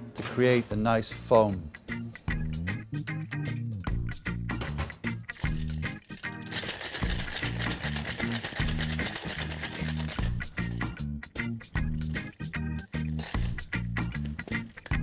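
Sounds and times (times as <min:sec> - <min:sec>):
background music with bass line: 0:01.6 - 0:15.0
ice rattling in cocktail shaker: 0:05.3 - 0:10.5.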